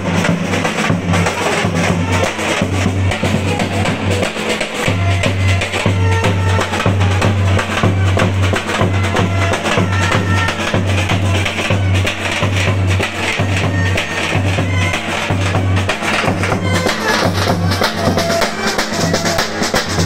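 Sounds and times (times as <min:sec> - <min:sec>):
bass drum and snare beat: 0:00.0 - 0:20.0
street band playing: 0:00.0 - 0:20.0
saxophone melody: 0:01.4 - 0:19.6.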